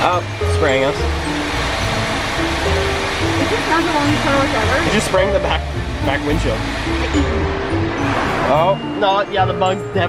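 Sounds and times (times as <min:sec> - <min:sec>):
water spraying on car windshield: 0:00.0 - 0:08.6
music playing: 0:00.0 - 0:10.0.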